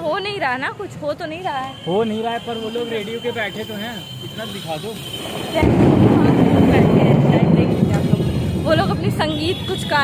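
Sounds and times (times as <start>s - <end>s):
wind buffeting microphone: 5.2s - 9.7s.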